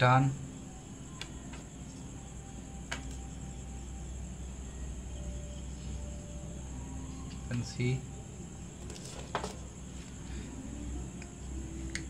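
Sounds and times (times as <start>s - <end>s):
low background hum and hiss: 0.0s - 12.0s
small parts tapping on wooden table: 8.9s - 9.6s.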